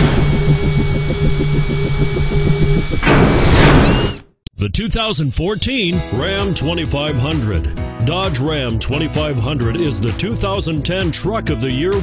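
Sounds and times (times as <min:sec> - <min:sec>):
low pulsing hum: 0:00.0 - 0:04.2.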